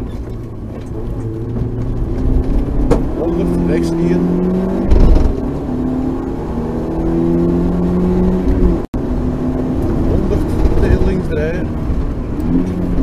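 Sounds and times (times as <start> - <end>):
gear change thump: 0.0 - 8.9, 9.6 - 13.0
rally car engine accelerating: 0.0 - 13.0.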